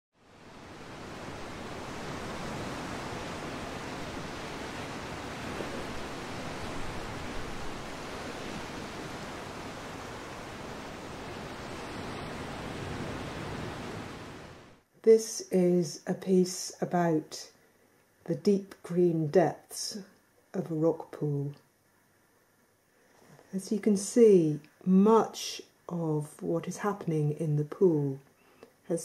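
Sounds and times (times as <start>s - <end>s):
sea waves rushing: 0.2s - 14.8s.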